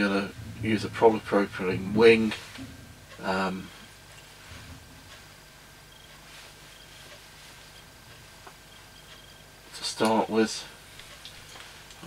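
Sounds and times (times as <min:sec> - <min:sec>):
faint rustling of materials: 0:00.0 - 0:12.0
steady low hum: 0:00.0 - 0:12.0.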